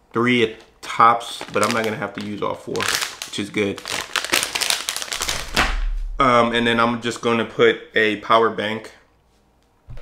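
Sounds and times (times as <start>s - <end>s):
plastic bag crinkling: 0.5s - 5.7s
low rumble: 5.2s - 7.1s.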